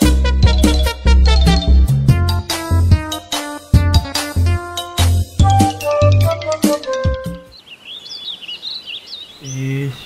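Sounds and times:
upbeat intro jingle: 0:00.0 - 0:07.3
small birds chirping: 0:07.4 - 0:10.0.

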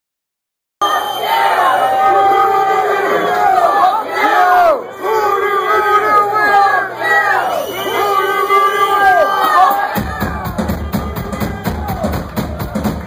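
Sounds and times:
crowd cheering and shouting: 0:00.8 - 0:13.0.

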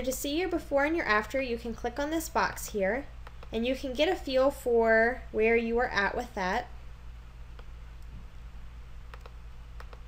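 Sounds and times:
computer mouse clicking: 0:02.7 - 0:03.6, 0:07.5 - 0:07.7, 0:09.1 - 0:10.0.

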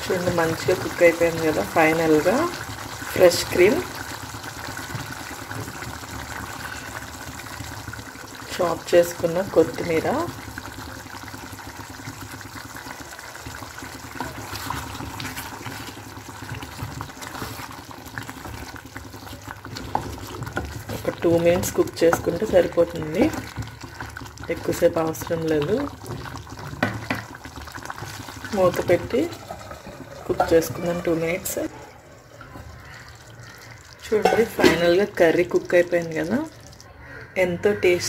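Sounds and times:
curry bubbling and hissing: 0:00.0 - 0:37.2.

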